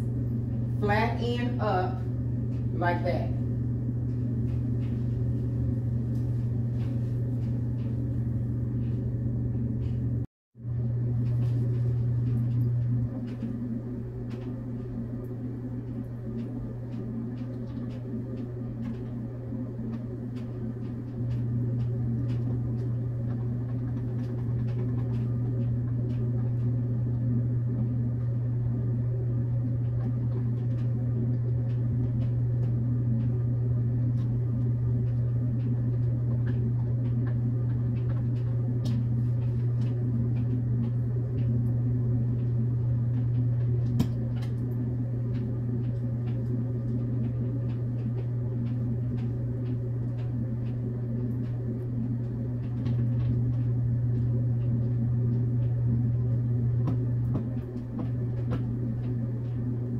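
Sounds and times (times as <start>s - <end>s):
low room hum: 0.0s - 59.9s.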